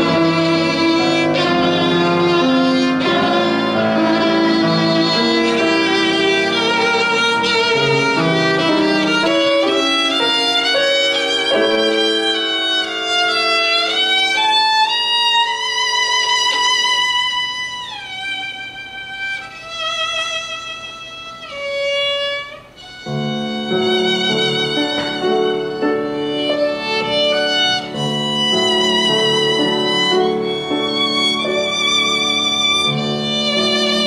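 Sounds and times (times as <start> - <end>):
grand piano accompaniment: 0.0 - 34.0
violin melody: 0.0 - 34.0.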